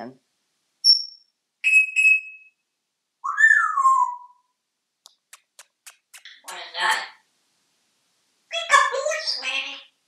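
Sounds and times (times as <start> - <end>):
parrot whistling: 1.6 - 2.5, 3.2 - 4.5.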